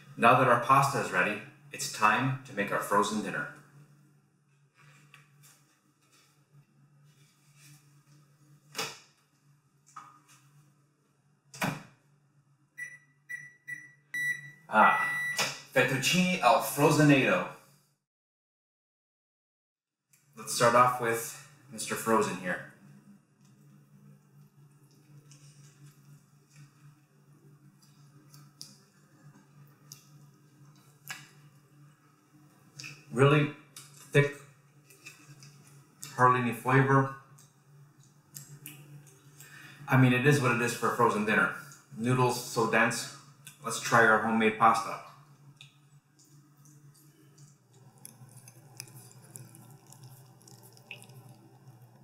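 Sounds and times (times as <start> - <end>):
short high keypad beeps: 12.8 - 15.4
steady low hum: 20.4 - 52.0
slurping and chewing: 34.8 - 36.2, 45.2 - 52.0.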